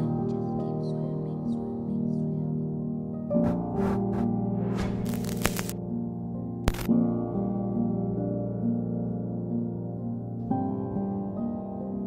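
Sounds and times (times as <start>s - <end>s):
soft ambient music: 0.0s - 12.0s
sharp click: 6.7s - 6.9s.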